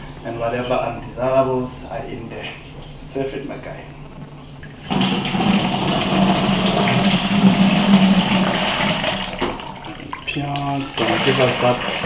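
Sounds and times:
juice pouring through a sieve: 4.9s - 12.0s.

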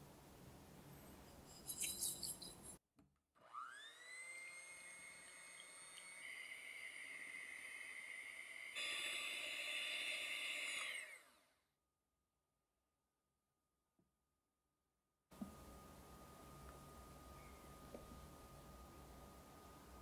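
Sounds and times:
electric hand mixer whining: 3.4s - 11.6s.

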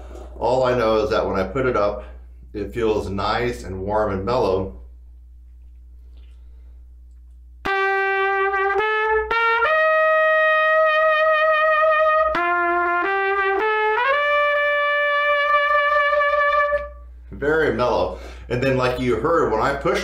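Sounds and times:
trumpet playing: 7.6s - 17.2s.

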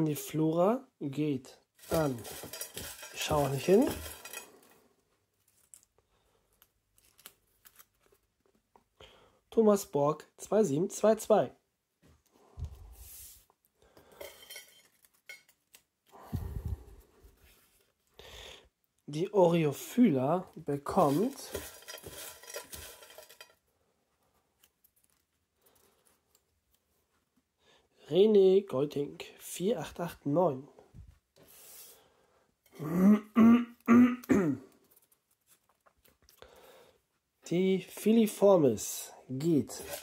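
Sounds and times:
paper slips rustling in metal bowl: 1.8s - 4.6s, 20.7s - 23.5s, 39.6s - 40.0s
paper crinkling: 1.8s - 4.8s, 5.4s - 8.6s, 20.8s - 23.5s, 24.6s - 26.8s, 34.8s - 36.4s, 39.7s - 40.0s.

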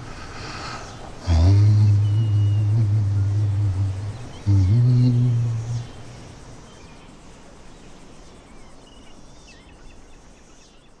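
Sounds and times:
insects chirping and trilling: 0.0s - 11.0s
steady hiss: 0.0s - 11.0s.

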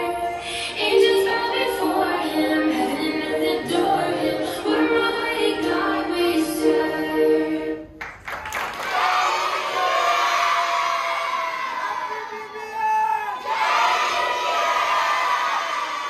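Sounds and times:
children cheering and shouting: 8.9s - 16.0s.

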